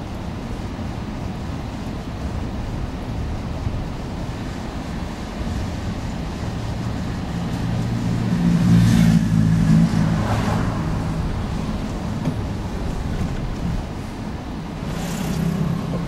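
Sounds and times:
low road rumble: 0:00.0 - 0:16.0
vehicle engine running: 0:00.0 - 0:16.0.

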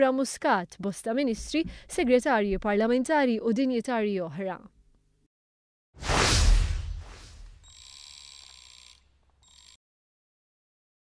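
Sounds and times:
loud whoosh: 0:06.0 - 0:07.6.

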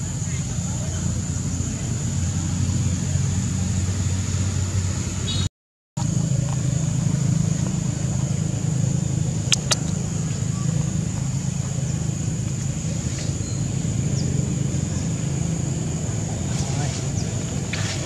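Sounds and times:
high whine: 0:00.0 - 0:18.0
low motor hum: 0:06.0 - 0:18.0
sharp clicks: 0:09.5 - 0:10.0.

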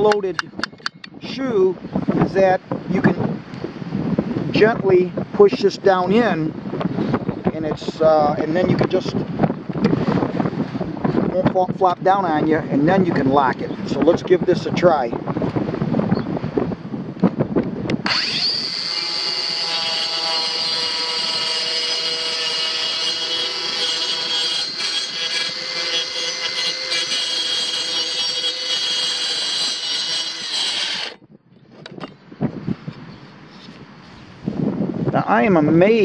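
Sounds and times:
circular saw whining: 0:18.0 - 0:31.2
saw cutting wood panel: 0:18.0 - 0:31.2.

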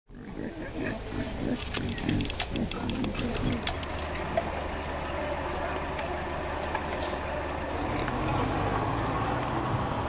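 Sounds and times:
wild boar grunting: 0:00.1 - 0:04.0
sharp clicks: 0:01.5 - 0:04.5.

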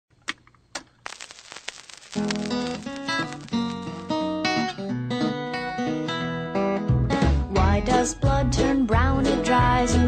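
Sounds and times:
crackling and rustling: 0:00.3 - 0:04.3
sharp clicks: 0:00.8 - 0:04.2.

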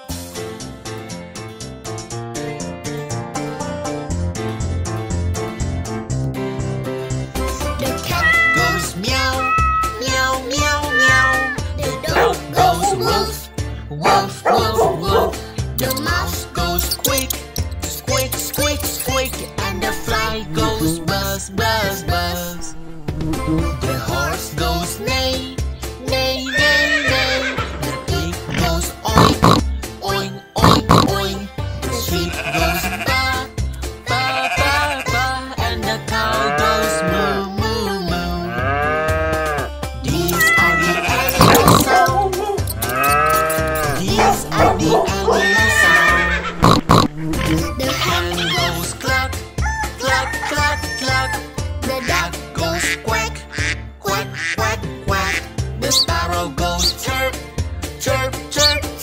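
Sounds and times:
children's song music with beat: 0:07.2 - 0:59.0
horse neighing: 0:08.2 - 0:08.8, 0:09.4 - 0:10.0, 0:26.5 - 0:27.7, 0:40.3 - 0:42.0, 0:42.7 - 0:47.6
duck quacking: 0:28.6 - 0:29.7, 0:30.6 - 0:31.2, 0:40.3 - 0:42.2, 0:42.8 - 0:48.8, 0:51.9 - 0:56.2.

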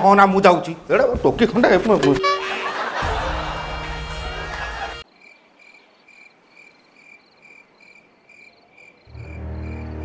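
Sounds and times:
cricket chirping: 0:05.0 - 0:10.0.

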